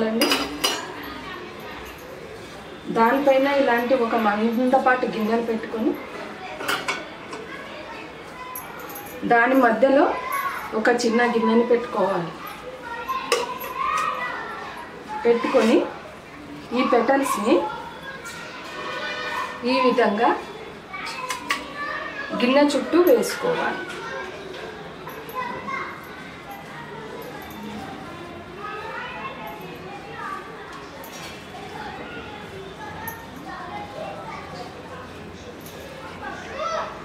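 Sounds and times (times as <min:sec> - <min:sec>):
faint children's voices: 0:00.0 - 0:37.0.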